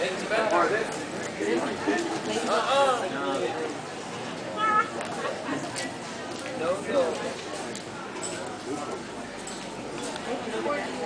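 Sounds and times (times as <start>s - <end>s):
voices murmuring: 0.0s - 11.0s
high-pitched cry: 4.6s - 5.0s.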